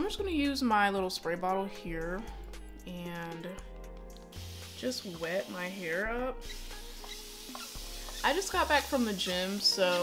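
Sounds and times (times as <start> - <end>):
quiet background music: 0.0 - 10.0
spray bottle hissing: 6.4 - 8.4.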